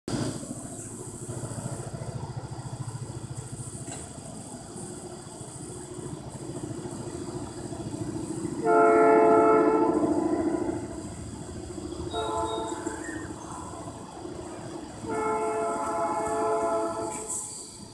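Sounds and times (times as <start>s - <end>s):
distant locomotive air horn: 8.6s - 11.1s, 12.0s - 13.4s, 15.0s - 17.7s.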